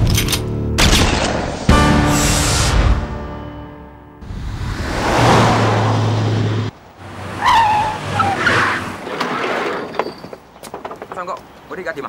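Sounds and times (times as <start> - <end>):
van engine drone: 4.2 - 8.4
tyres squealing: 7.2 - 12.0.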